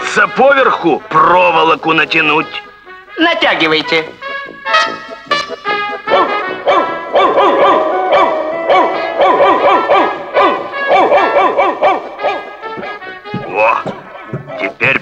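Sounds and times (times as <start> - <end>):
cartoon background music: 0.0 - 15.0
dog yelping barks: 4.6 - 12.9, 14.0 - 14.8.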